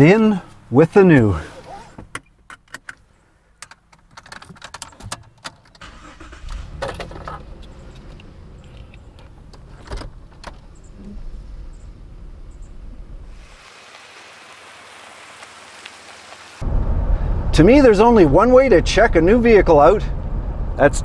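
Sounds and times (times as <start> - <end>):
keys jingling in ignition: 4.0 - 9.9
car engine idling: 5.8 - 13.4.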